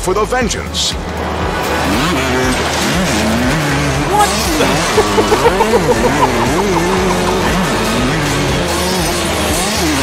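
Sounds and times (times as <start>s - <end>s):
motorcycle engines revving: 1.0s - 10.0s.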